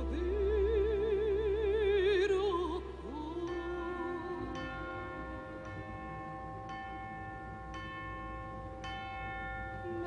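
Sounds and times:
tubular bells striking: 3.4 - 10.0.

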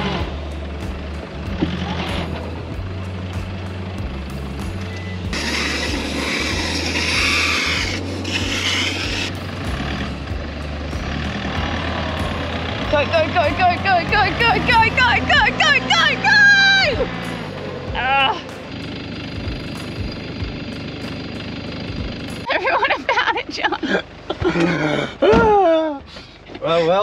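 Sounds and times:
van engine labouring: 0.0 - 27.0
hissing: 5.3 - 9.4
wheels spinning in sand: 5.3 - 9.4.

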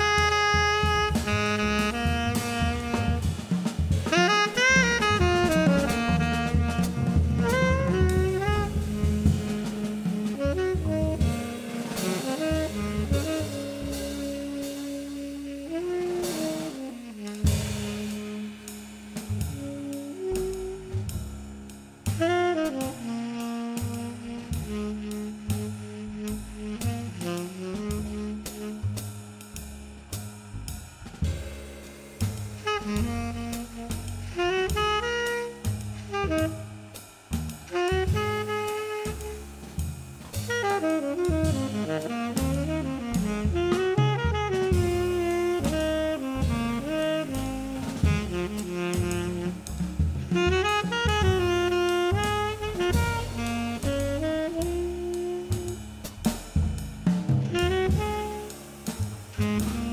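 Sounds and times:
plucked upright bass: 0.0 - 16.7, 23.8 - 36.6, 41.2 - 59.9
tenor saxophone melody: 0.0 - 29.6, 32.2 - 59.9
drum kit with cymbals: 0.0 - 59.9.

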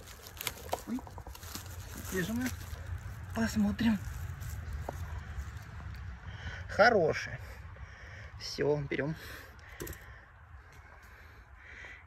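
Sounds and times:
faint rustling of forest litter: 0.0 - 6.7
steady low rumble: 0.0 - 11.6.

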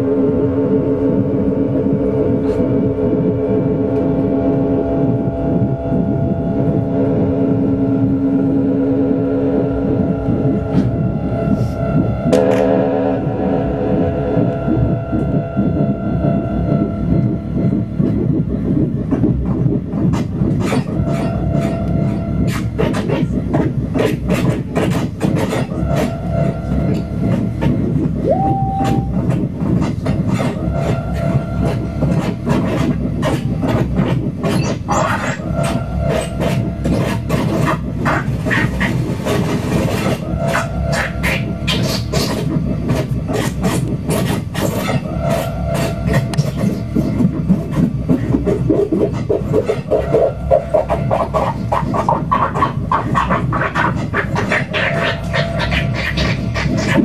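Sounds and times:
held synth tones: 0.0 - 19.8, 25.7 - 29.5
low rumbling synth texture: 0.0 - 57.0
upward pitch glide: 28.2 - 29.2.

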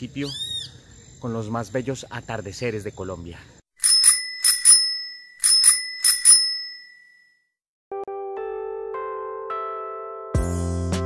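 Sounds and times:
high-pitched bell ringing: 3.8 - 7.5.

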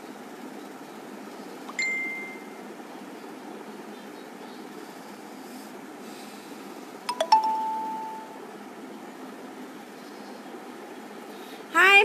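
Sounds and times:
room noise hum: 0.0 - 12.0.

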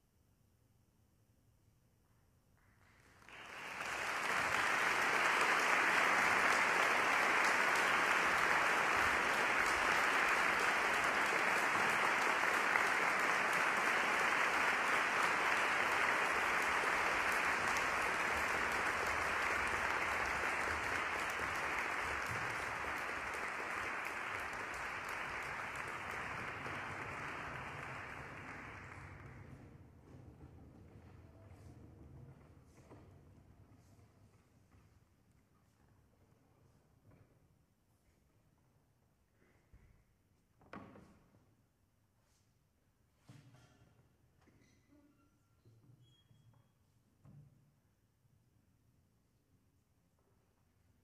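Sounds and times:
audience applauding: 3.0 - 29.6.

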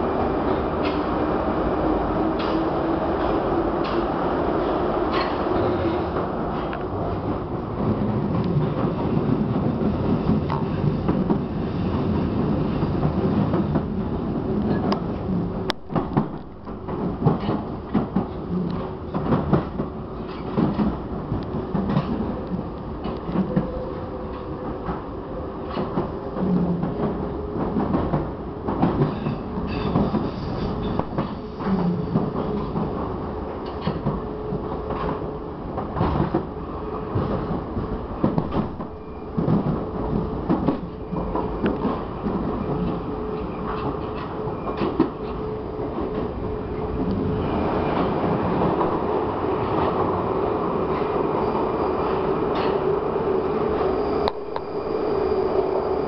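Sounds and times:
train rumbling: 0.0 - 56.0.

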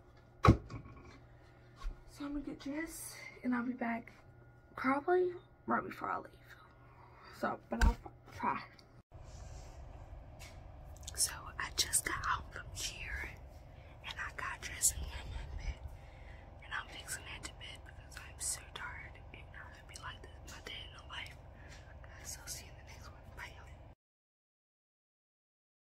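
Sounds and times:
steady low hum: 0.0 - 24.0
woman whispering: 11.1 - 15.9, 16.6 - 24.0.

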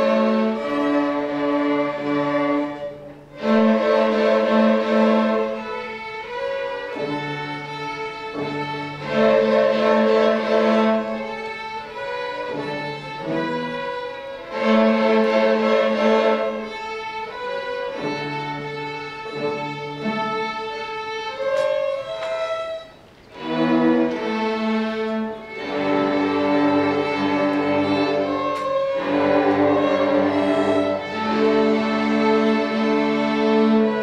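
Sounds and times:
string orchestra bowed chords: 0.0 - 34.0.

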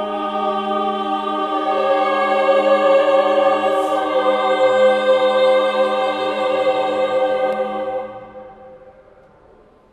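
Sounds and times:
mixed choir holding a chord: 0.0 - 9.3.

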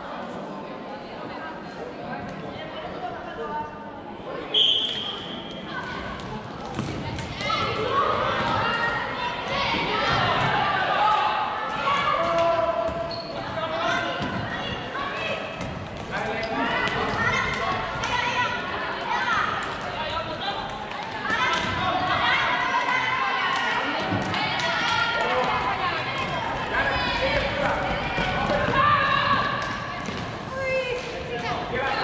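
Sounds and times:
voices shouting: 21.2 - 32.0.

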